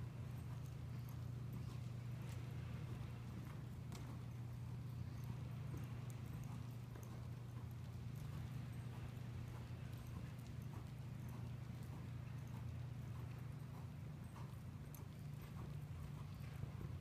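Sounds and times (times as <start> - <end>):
horse hoofbeats on soft dirt: 0.0 - 17.0
steady low hum: 0.0 - 17.0.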